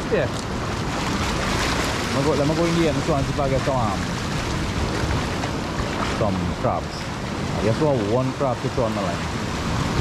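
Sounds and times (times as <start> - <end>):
sea surf washing around rock: 0.0 - 10.0
wind rumbling on microphone: 0.0 - 10.0.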